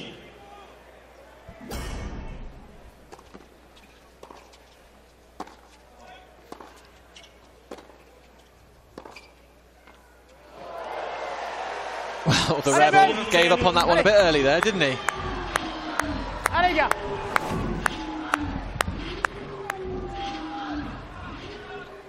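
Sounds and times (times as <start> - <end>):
crowd noise: 0.0 - 22.0.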